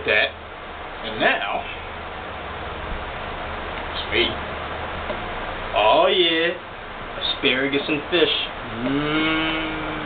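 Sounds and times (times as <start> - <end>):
background hiss: 0.0 - 10.0
low hum: 8.4 - 10.0.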